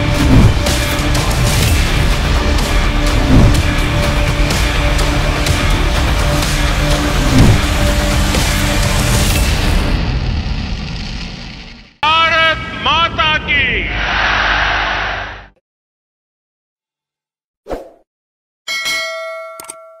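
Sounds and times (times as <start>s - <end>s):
background music: 0.0s - 10.0s
voice calling out: 12.0s - 14.0s.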